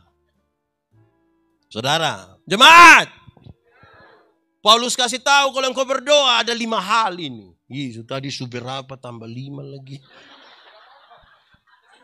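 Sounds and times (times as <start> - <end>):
audience laughing: 10.0 - 12.0.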